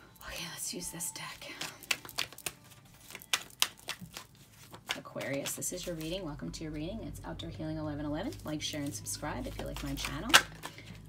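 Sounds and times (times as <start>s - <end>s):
cards being shuffled: 1.3s - 6.3s, 8.3s - 11.0s.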